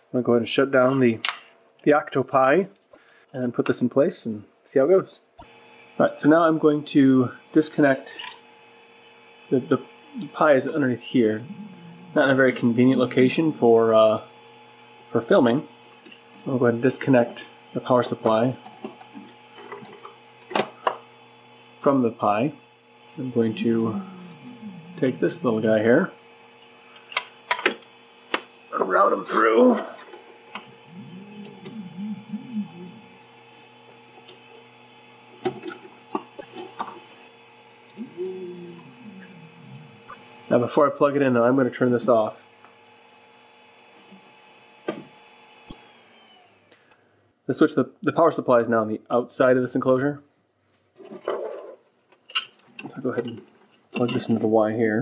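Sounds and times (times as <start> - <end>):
faint steady hum: 0.0 - 43.0.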